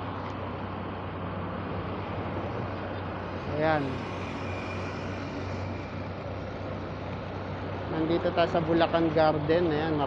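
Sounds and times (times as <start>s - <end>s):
low steady engine hum: 0.0s - 10.0s
vehicles running past: 0.0s - 10.0s.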